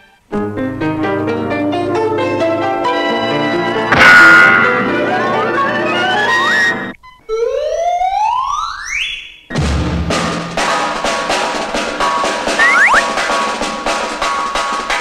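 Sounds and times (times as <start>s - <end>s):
fast drum-led music: 9.6s - 15.0s
whistle rising in pitch: 12.6s - 13.2s.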